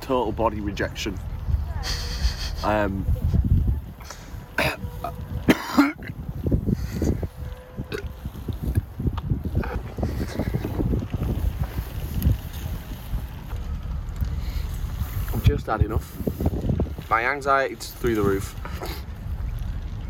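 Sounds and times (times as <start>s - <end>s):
wind buffeting microphone: 0.0s - 20.0s
person laughing: 1.8s - 2.8s, 18.6s - 19.1s.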